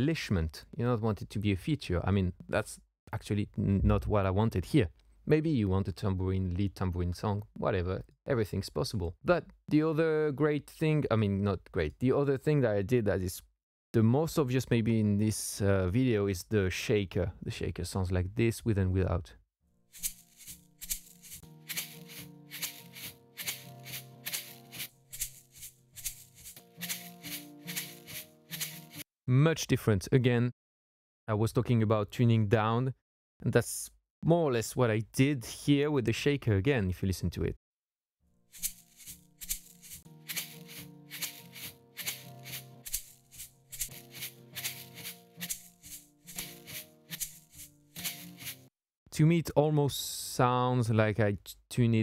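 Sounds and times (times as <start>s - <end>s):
shaker rhythm: 20.0s - 29.0s, 38.6s - 48.6s.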